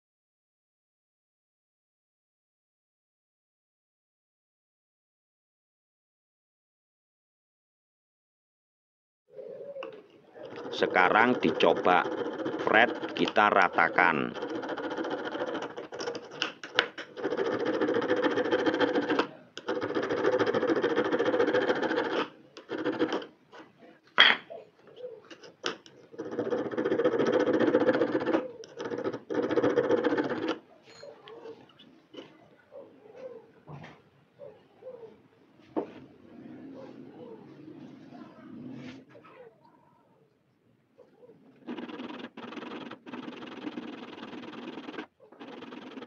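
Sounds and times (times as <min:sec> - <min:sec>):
metal file rasping on fret wire: 0:10.4 - 0:23.3, 0:26.0 - 0:30.6, 0:41.6 - 0:46.0.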